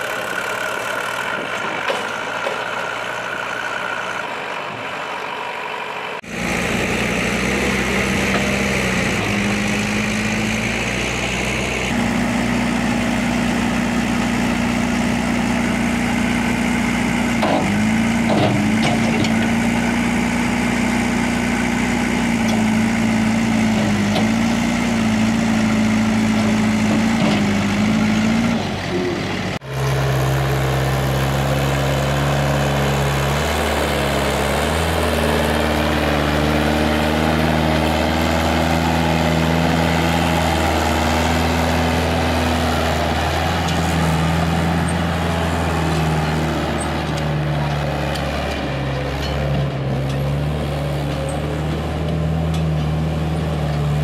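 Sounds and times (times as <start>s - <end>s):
steady engine note: 0.0s - 50.4s
tractor diesel engine labouring: 0.0s - 54.0s.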